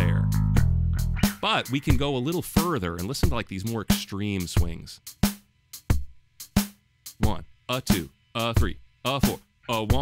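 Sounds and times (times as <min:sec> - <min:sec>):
swung drum machine beat: 0:00.0 - 0:10.0.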